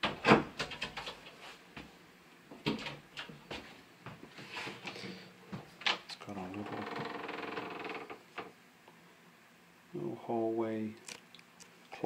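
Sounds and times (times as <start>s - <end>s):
door hinge creaking: 6.5s - 8.5s.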